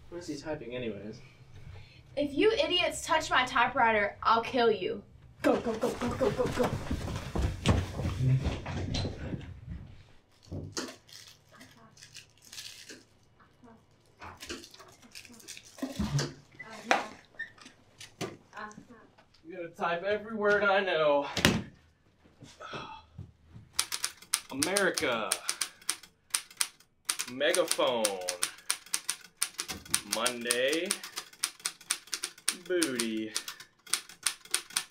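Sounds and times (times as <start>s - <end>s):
shuffling footsteps: 5.4s - 10.7s, 22.0s - 23.8s
manual typewriter key clacks: 23.8s - 34.9s.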